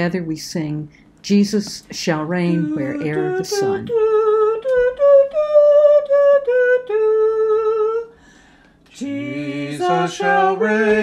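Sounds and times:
person singing unaccompanied: 0:02.4 - 0:08.1, 0:08.9 - 0:11.0
person humming: 0:02.4 - 0:08.2.

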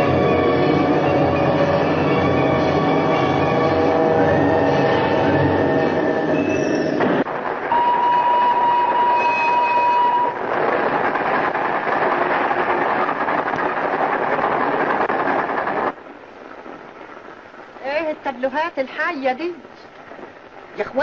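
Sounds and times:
orchestral film music: 0:00.0 - 0:06.5
train running: 0:00.0 - 0:21.0
train whistle: 0:07.7 - 0:10.4.

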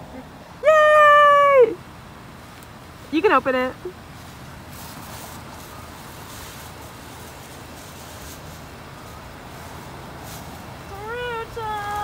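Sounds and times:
woman squealing excitedly: 0:00.6 - 0:01.8.

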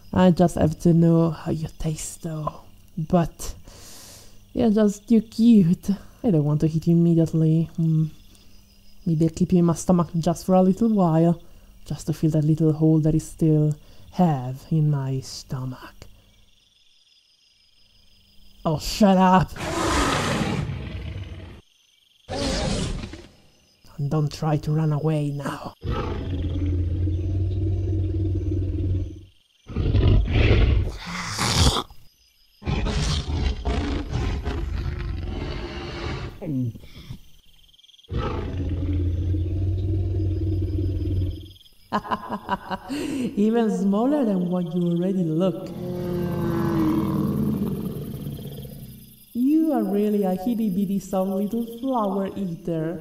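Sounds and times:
growling dinosaur roar: 0:19.6 - 0:21.6, 0:25.8 - 0:31.9, 0:32.6 - 0:36.5, 0:38.1 - 0:41.4, 0:45.6 - 0:49.0.

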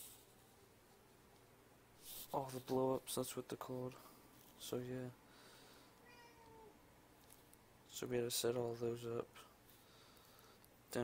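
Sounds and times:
cat meow: 0:06.0 - 0:06.8.

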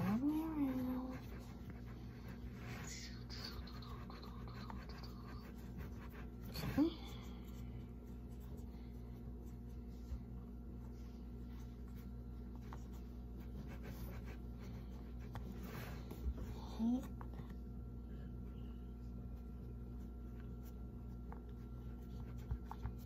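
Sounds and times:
hands working pie dough: 0:00.0 - 0:17.7, 0:19.2 - 0:23.0
steady low hum: 0:00.0 - 0:23.0.

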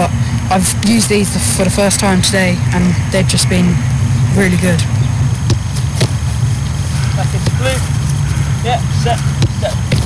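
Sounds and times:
sharp knocks: 0:05.4 - 0:06.2.

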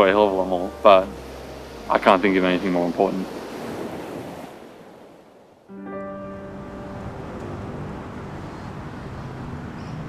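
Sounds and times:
held music chord: 0:00.0 - 0:03.5, 0:05.7 - 0:09.4
soft outdoor noise: 0:00.0 - 0:10.0.

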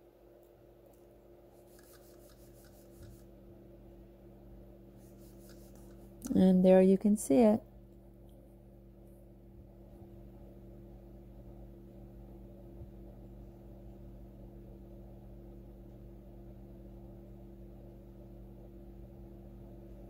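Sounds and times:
faint electrical hum: 0:00.0 - 0:20.0
background hiss: 0:00.9 - 0:03.4, 0:04.9 - 0:06.4.

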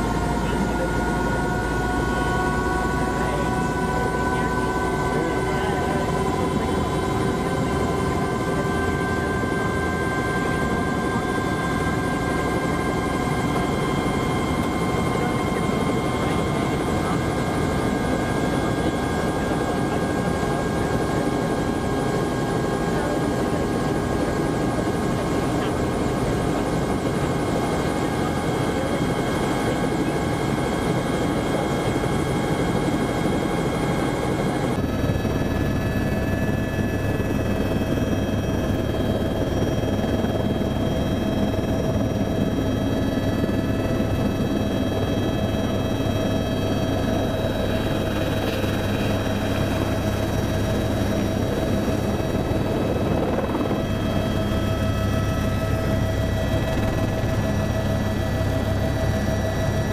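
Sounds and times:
helicopter rotor drone: 0:00.0 - 0:59.9
helicopter turbine whine: 0:00.0 - 0:59.9.

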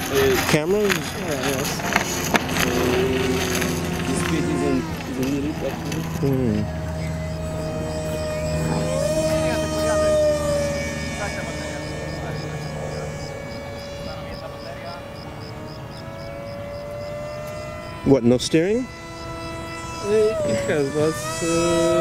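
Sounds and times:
model airplane motor whine: 0:00.0 - 0:22.0.

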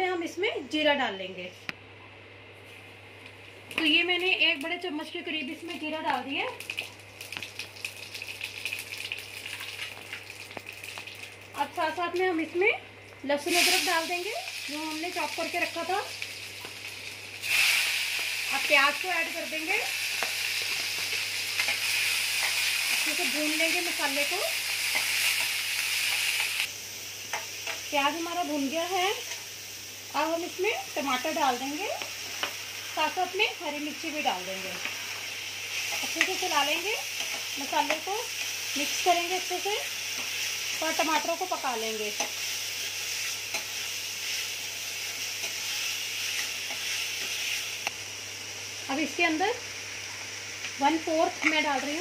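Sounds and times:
onions sizzling in oil: 0:03.7 - 0:52.0.

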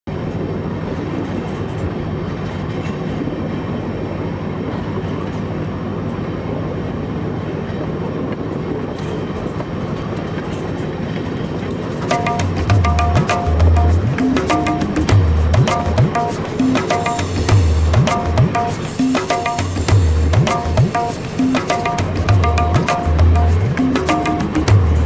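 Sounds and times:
train engine drone: 0:00.1 - 0:25.0
train wheels on track: 0:00.1 - 0:25.0.

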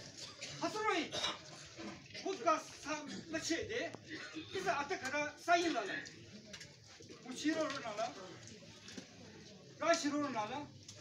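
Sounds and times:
man addressing a crowd: 0:00.5 - 0:01.4, 0:02.2 - 0:06.1, 0:07.2 - 0:08.5, 0:09.8 - 0:10.7.

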